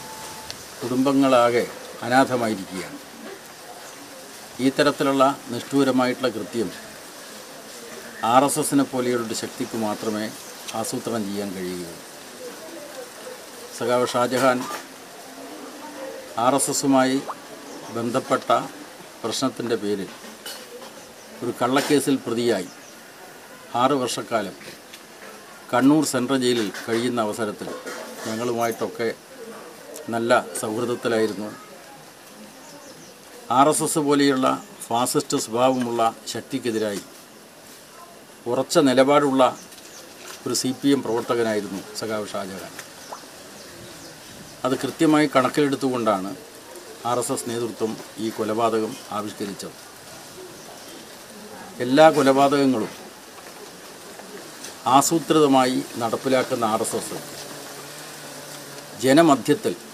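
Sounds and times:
steady background hiss: 0:00.0 - 0:59.9
man speaking: 0:00.8 - 0:03.1, 0:04.6 - 0:06.9, 0:08.2 - 0:12.0, 0:13.7 - 0:14.8, 0:16.3 - 0:20.2, 0:25.7 - 0:29.3, 0:30.0 - 0:31.6, 0:33.5 - 0:37.1, 0:38.4 - 0:39.6, 0:40.4 - 0:42.8, 0:44.6 - 0:49.8, 0:51.8 - 0:53.0, 0:54.8 - 0:57.4, 0:59.0 - 0:59.9.

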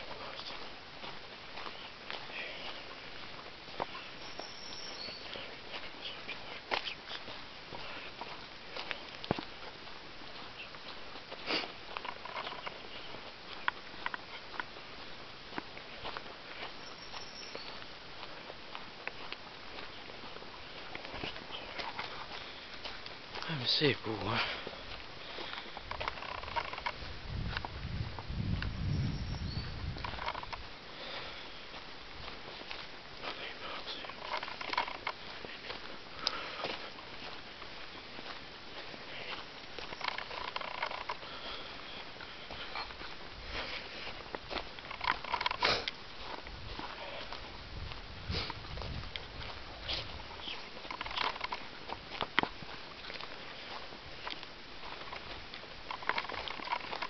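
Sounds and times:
footsteps on forest trail: 0:00.0 - 0:57.0
rustling hiss: 0:00.0 - 0:57.0
twigs clicking underfoot: 0:10.4 - 0:14.8, 0:24.8 - 0:27.8, 0:29.8 - 0:30.7, 0:32.7 - 0:37.4, 0:39.3 - 0:46.9, 0:48.5 - 0:57.0
microphone handling rumble: 0:25.9 - 0:30.7, 0:46.5 - 0:51.6.

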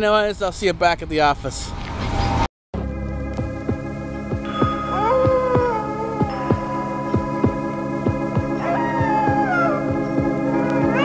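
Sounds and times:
steady electronic drone: 0:02.8 - 0:11.0
regular electronic pulse: 0:03.4 - 0:11.0
sliding wavering tones: 0:04.1 - 0:11.0.

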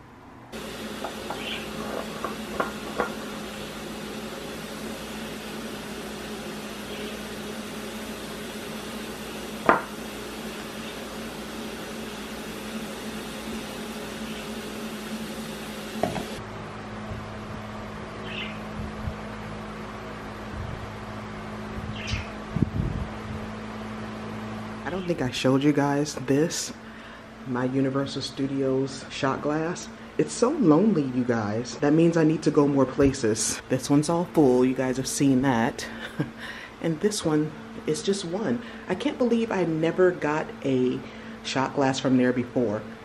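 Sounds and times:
fan-like machine humming: 0:00.0 - 0:43.0.

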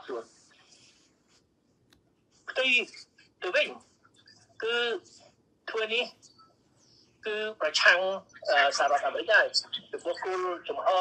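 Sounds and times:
person speaking: 0:02.4 - 0:06.3, 0:07.2 - 0:11.0.

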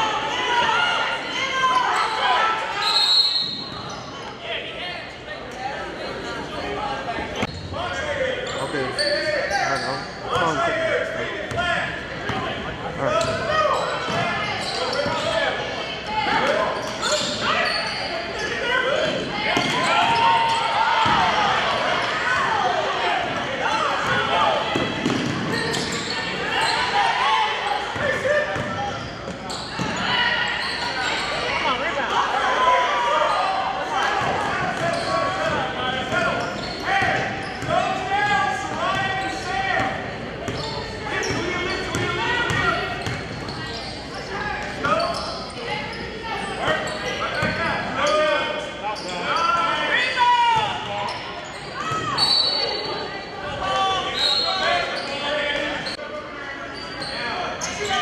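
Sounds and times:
sneakers squeaking: 0:01.6 - 0:04.4, 0:07.4 - 0:10.7, 0:11.4 - 0:22.4, 0:23.2 - 0:31.8, 0:33.2 - 0:56.0, 0:56.6 - 0:58.0.

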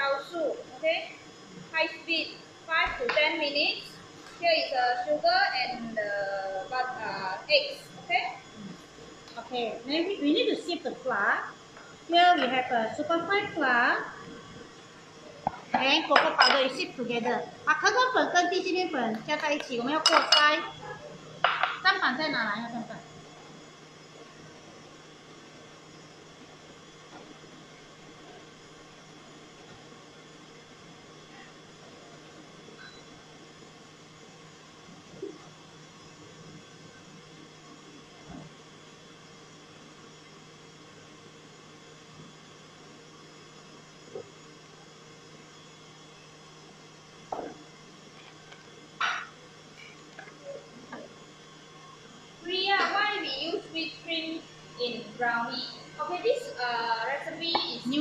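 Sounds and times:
stand mixer humming: 0:06.5 - 0:58.0.

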